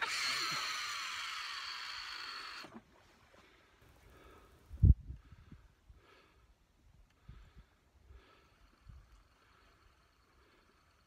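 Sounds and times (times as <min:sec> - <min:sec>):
fishing reel spool whirring: 0:00.0 - 0:02.8, 0:08.2 - 0:11.0.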